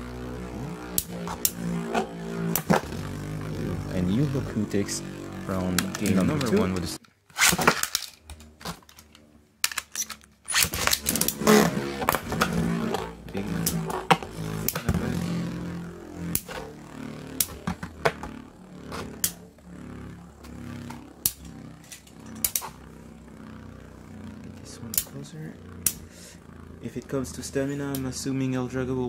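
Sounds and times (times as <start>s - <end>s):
spinning tops whirring: 0.0s - 29.0s.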